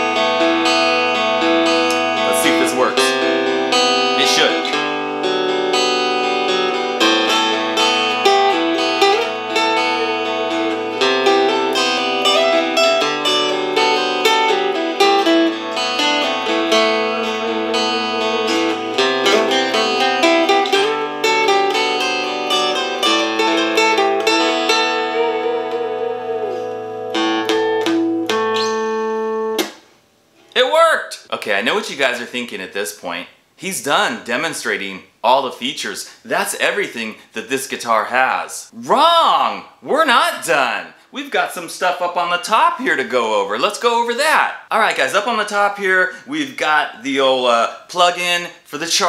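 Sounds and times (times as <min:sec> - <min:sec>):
guitar backing part through speaker: 0:00.0 - 0:29.8, 0:30.4 - 0:49.0
plucked guitar melody: 0:00.0 - 0:29.8.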